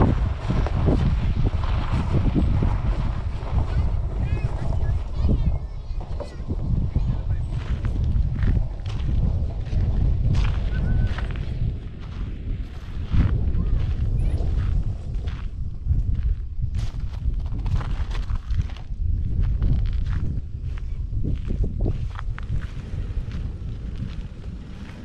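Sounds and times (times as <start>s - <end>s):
wind rumbling on microphone: 0.0s - 25.0s
footsteps on dirt and grass: 6.3s - 25.0s.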